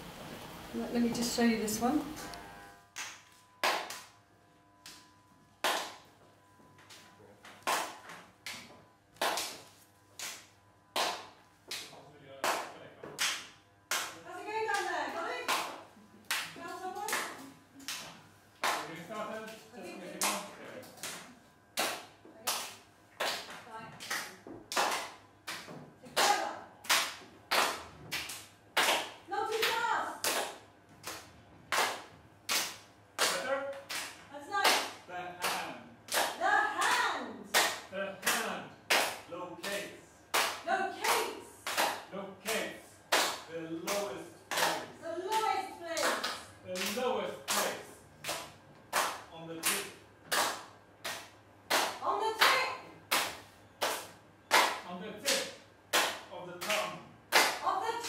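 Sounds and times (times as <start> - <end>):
hands clapping: 3.0 - 4.2, 4.8 - 6.1, 6.8 - 19.6, 20.2 - 57.6.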